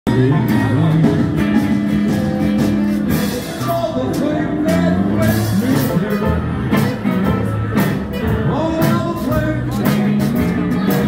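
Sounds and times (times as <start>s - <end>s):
rock music with singing: 0.1s - 11.0s.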